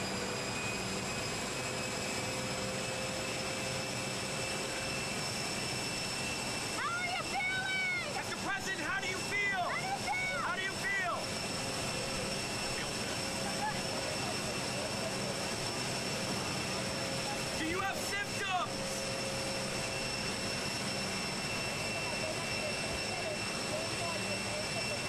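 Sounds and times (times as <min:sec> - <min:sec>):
jet aircraft engine whine: 0:00.0 - 0:25.0.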